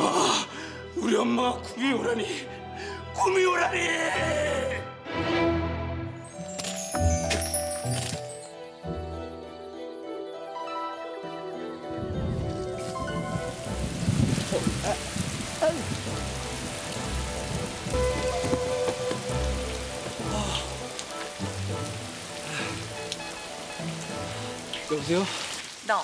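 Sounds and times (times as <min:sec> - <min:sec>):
low music: 0:00.0 - 0:25.3
rain pouring: 0:06.3 - 0:08.5, 0:12.0 - 0:26.0.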